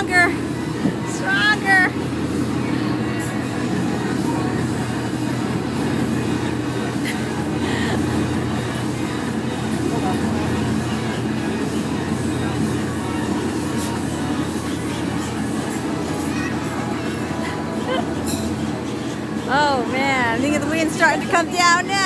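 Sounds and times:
fans blowing wind: 0:00.0 - 0:22.0.

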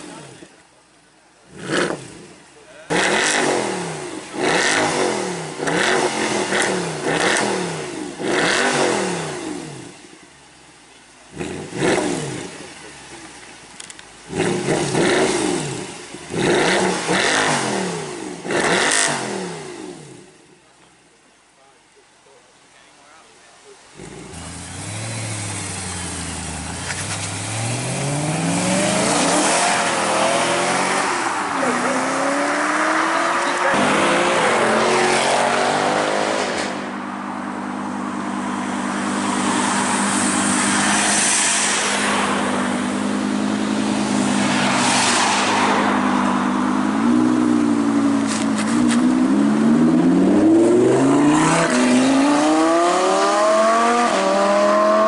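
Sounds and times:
car engines revving: 0:00.0 - 0:21.8, 0:23.6 - 0:55.0.

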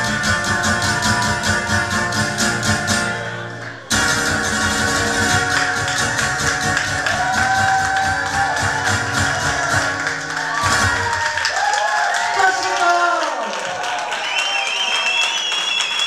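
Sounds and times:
acoustic guitar strumming: 0:00.0 - 0:11.2.

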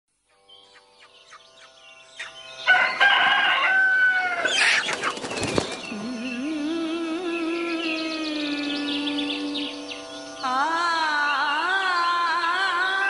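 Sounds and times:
bird chirps: 0:00.3 - 0:13.0.

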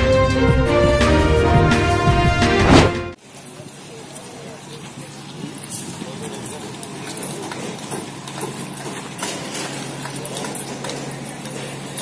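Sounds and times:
group footsteps on dirt road: 0:05.5 - 0:12.0.

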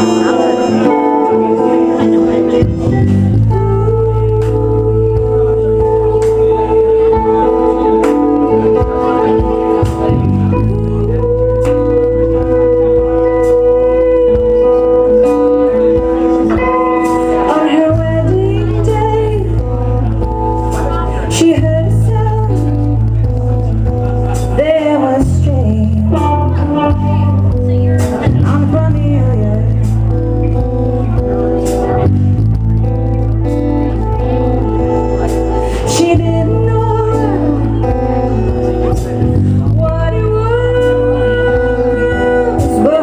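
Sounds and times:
acoustic guitar: 0:00.0 - 0:43.0
drums: 0:00.0 - 0:43.0
electric bass line: 0:00.0 - 0:43.0
live pop band playing: 0:00.0 - 0:43.0.

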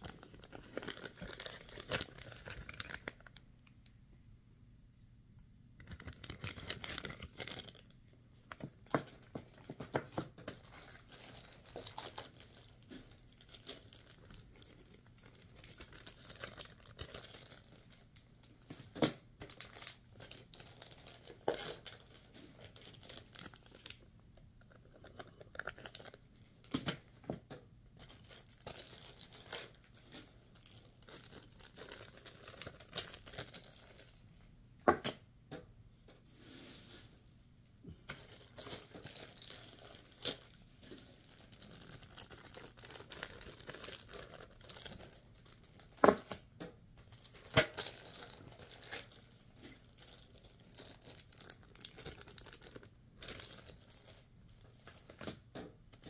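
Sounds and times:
plastic packaging crinkling: 0:00.0 - 0:03.8, 0:05.8 - 0:08.0, 0:08.8 - 0:27.0, 0:28.0 - 0:34.5, 0:38.1 - 0:46.4, 0:47.0 - 0:55.4.

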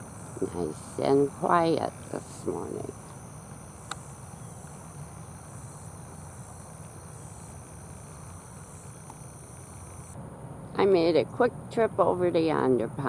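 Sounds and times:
insects chorus: 0:00.0 - 0:13.0
low steady rumble: 0:00.0 - 0:13.0.

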